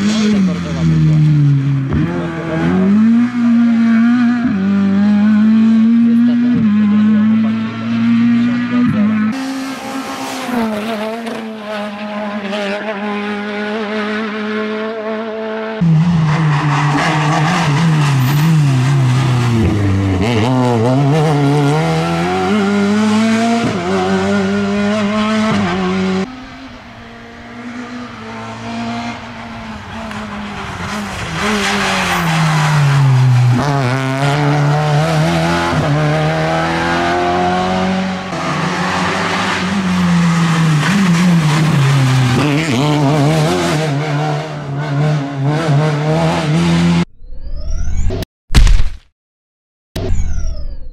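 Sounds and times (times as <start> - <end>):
rally car engine revving: 0.0 - 47.1.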